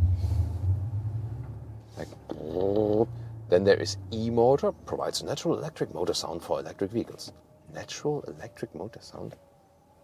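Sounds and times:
emulated engine rumble in car cabin: 0.0s - 7.5s.

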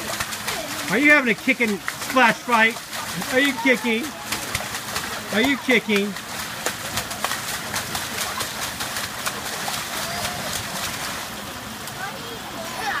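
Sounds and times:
faint children's voices: 0.0s - 1.8s, 2.7s - 13.0s
water splashing in pool: 0.0s - 13.0s.

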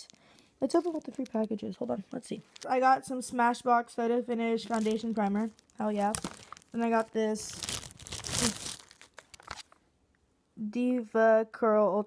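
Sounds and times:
plastic wrapping crinkling: 0.0s - 2.9s, 4.5s - 9.8s.

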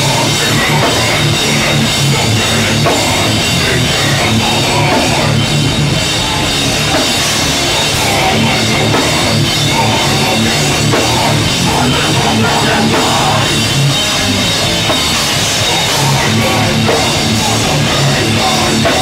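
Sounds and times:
loud drum kit: 0.0s - 19.0s
rock band playing live: 0.0s - 19.0s.

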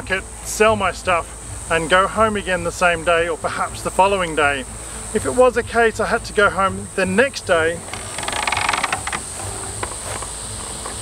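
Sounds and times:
high insect drone: 0.0s - 11.0s
wooden cart rattling: 5.2s - 11.0s.

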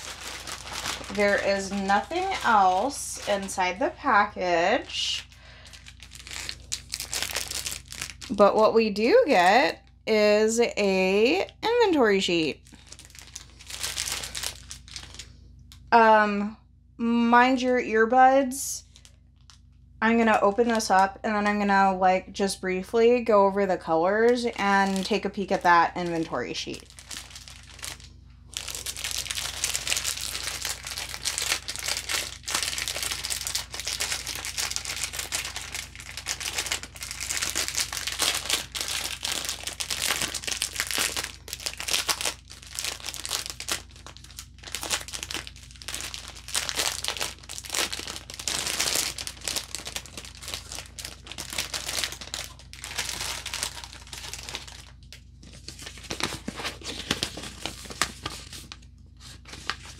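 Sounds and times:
plastic packaging crinkling: 0.0s - 9.7s, 11.3s - 15.9s, 18.8s - 19.8s, 24.2s - 59.9s.

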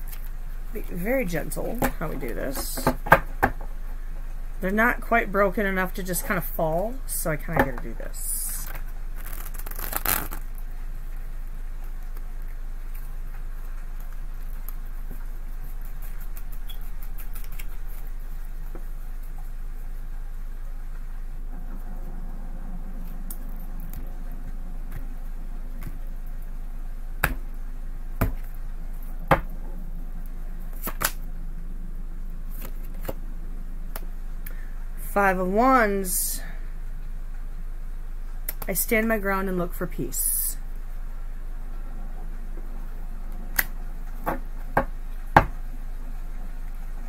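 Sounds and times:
steady low hum: 0.0s - 47.0s
cards shuffling: 8.6s - 10.5s, 14.0s - 18.2s, 30.7s - 31.2s, 32.5s - 33.2s.

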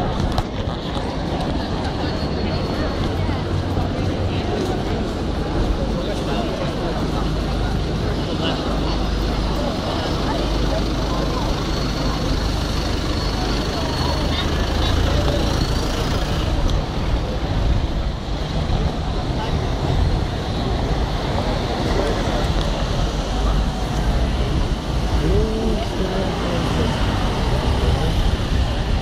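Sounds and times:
passers-by talking: 0.0s - 29.0s
road traffic: 0.0s - 29.0s.

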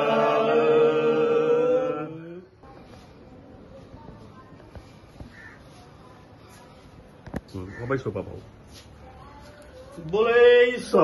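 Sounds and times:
faint bird call: 5.2s - 5.8s.

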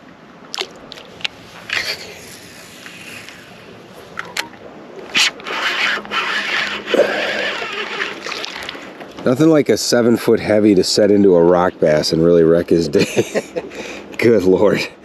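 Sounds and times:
scraping rustle: 1.1s - 9.4s
fishing reel clicks: 5.1s - 8.8s.

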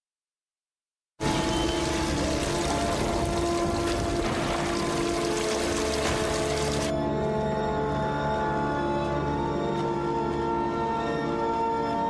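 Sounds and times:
rushing water noise: 1.2s - 6.9s
dark soundtrack music: 1.2s - 12.0s.

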